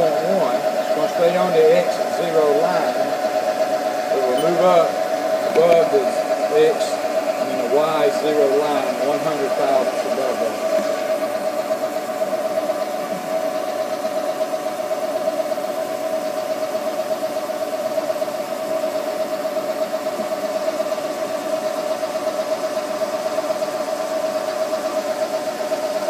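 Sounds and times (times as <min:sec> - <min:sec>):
milling machine whine: 0:00.0 - 0:26.0.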